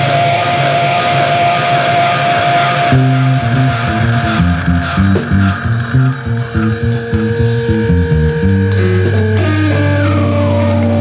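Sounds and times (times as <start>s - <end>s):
experimental rock music: 0.0s - 11.0s.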